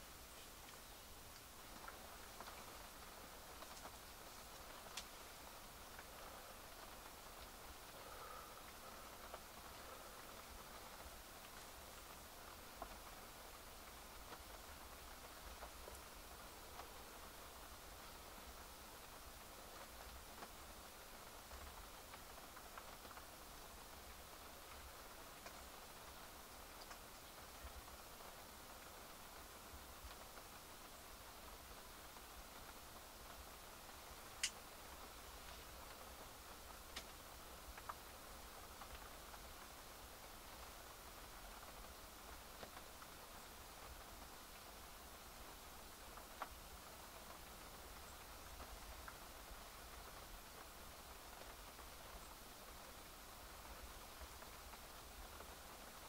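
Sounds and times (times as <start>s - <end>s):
light rain: 0.0s - 56.0s.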